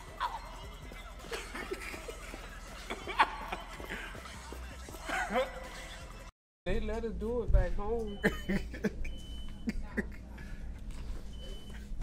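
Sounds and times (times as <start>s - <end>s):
store background hum: 0.0s - 12.0s
stifled laughter: 1.1s - 4.4s.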